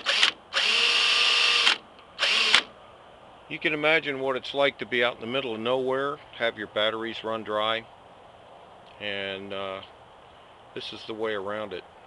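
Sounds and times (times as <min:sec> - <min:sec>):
cordless drill motor whirring: 0:00.0 - 0:02.7.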